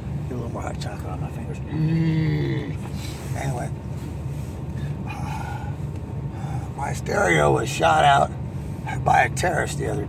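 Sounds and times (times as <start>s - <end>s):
road noise: 0.0s - 10.0s
vehicle engine rumble: 0.0s - 10.0s.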